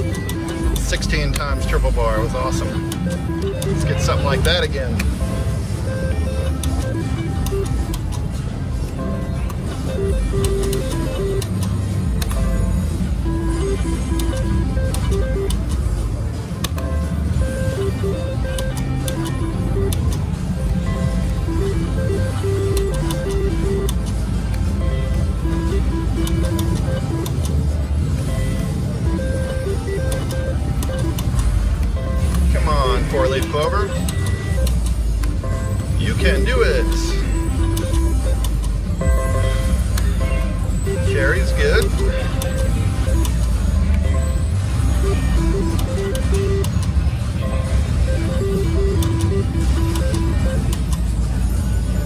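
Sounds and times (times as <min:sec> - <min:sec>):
slot machine beeps and jingles: 0:00.0 - 0:52.0.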